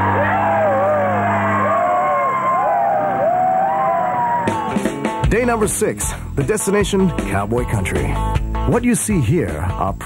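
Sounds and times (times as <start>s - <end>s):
men yelling and whooping: 0.0s - 4.9s.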